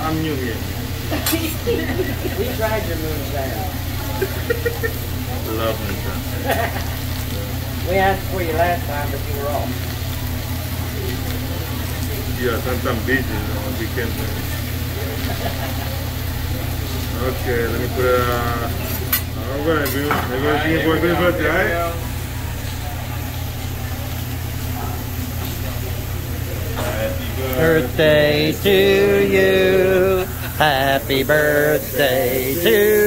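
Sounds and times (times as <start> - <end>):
exhaust hood fan humming: 0.0 - 33.0
faint room chatter: 0.0 - 33.0
food sizzling on griddle: 0.0 - 33.0
faint voices: 1.2 - 33.0.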